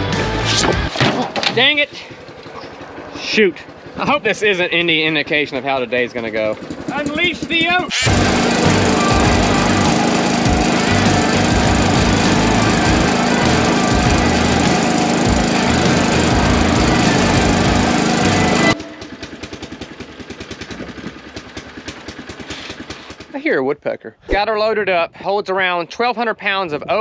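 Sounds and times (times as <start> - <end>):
auger engine running: 1.7 - 23.4
rapid rattle: 6.4 - 23.4.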